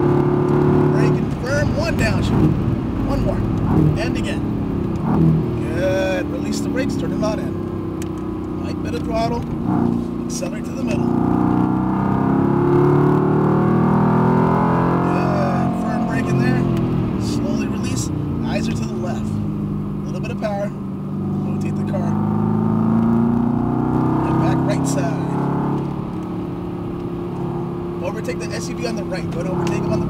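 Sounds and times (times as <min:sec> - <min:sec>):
car engine revving from inside cabin: 0:00.0 - 0:30.0.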